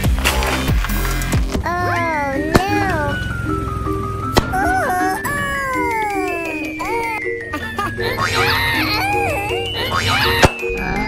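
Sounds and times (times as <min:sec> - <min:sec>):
background music: 0:00.0 - 0:11.0
high cartoon voice: 0:01.6 - 0:03.2, 0:04.5 - 0:07.2.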